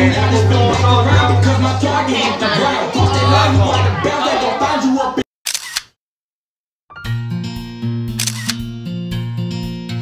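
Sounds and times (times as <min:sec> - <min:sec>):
background music with bass line: 0:00.0 - 0:04.2, 0:07.0 - 0:10.0
music: 0:00.0 - 0:05.2, 0:06.9 - 0:10.0
camera shutter sound effect: 0:05.5 - 0:06.0, 0:08.2 - 0:08.7.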